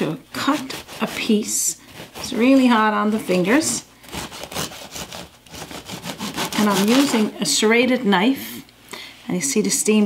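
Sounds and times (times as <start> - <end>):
bread knife sawing through crust: 0.4 - 2.9, 4.0 - 7.3.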